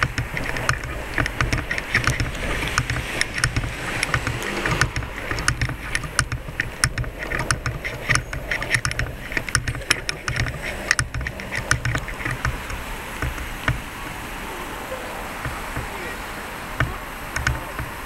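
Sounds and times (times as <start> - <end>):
low street rumble: 0.0 - 18.0.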